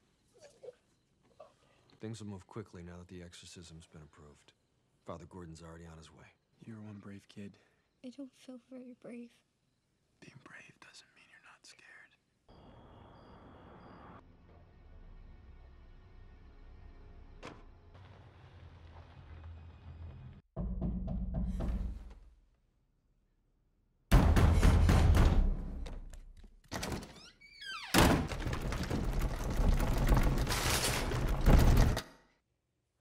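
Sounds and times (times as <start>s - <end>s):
night-time outdoor hiss: 0.0s - 14.2s
soft whispering voice: 10.2s - 12.4s.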